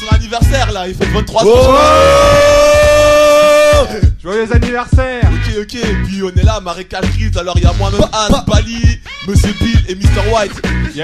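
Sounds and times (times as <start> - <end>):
man shouting ooh into microphone: 1.4 - 4.0.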